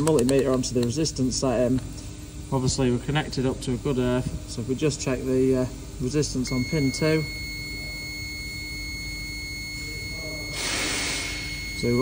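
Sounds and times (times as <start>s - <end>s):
steady low hum: 0.0s - 12.0s
high-pitched whine: 6.0s - 12.0s.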